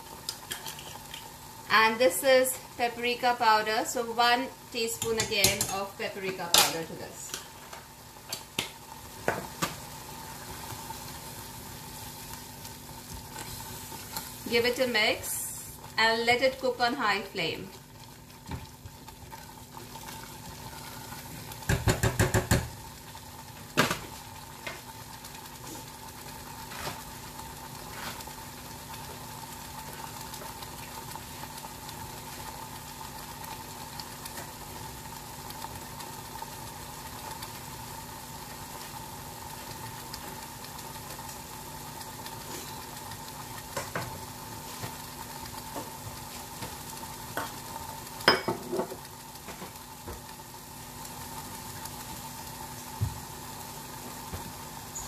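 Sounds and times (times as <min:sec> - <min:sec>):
sauce sizzling in a saucepan: 0:00.0 - 0:55.0.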